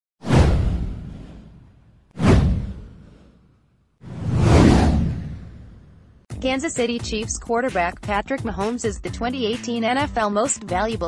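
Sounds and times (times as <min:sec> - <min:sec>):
cinematic whoosh with deep boom: 0:00.2 - 0:06.3.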